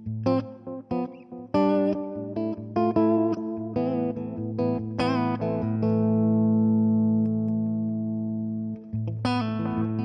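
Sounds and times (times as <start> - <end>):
electric guitar chord ringing: 0.4 - 10.0.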